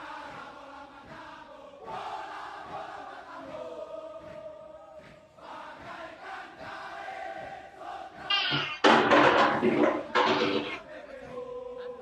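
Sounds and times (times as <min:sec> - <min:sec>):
soldiers chanting in unison: 0:00.0 - 0:08.3, 0:10.7 - 0:12.0.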